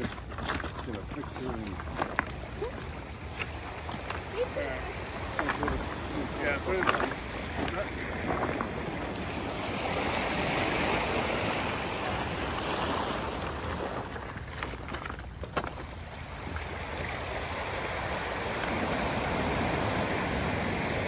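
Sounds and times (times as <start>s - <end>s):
surf washing over stones: 0.0s - 21.0s.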